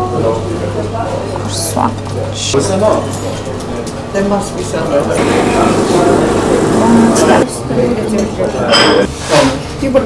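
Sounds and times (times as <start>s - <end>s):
coffee machine whirring: 4.6s - 7.4s.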